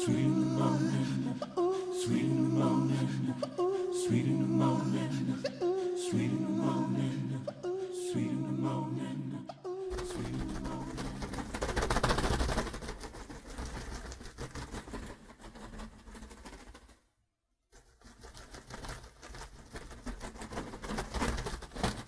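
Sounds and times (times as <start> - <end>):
rapid irregular clicking: 9.9 - 17.1, 17.7 - 22.0.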